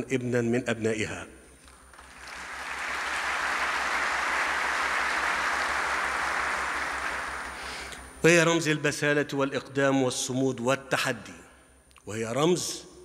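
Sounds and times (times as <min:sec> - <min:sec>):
large audience applauding: 0:01.7 - 0:07.9.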